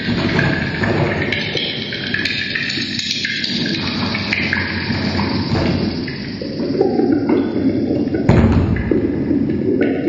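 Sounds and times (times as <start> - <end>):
crackling electronic noise music: 0.0 - 10.0.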